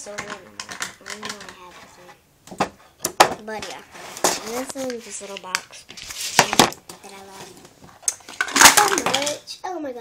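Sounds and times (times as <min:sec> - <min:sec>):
compacts falling and clattering: 0:07.8 - 0:09.4.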